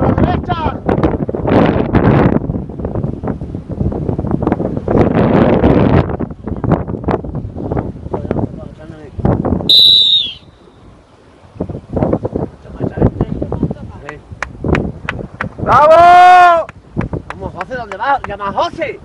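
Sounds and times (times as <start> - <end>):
choppy sea water: 0.0 - 19.0
wind buffeting microphone: 0.0 - 19.0.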